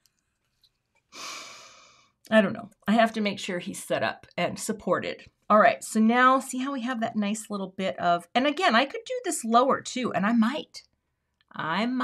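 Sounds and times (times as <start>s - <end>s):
woman sighing: 1.2s - 1.9s.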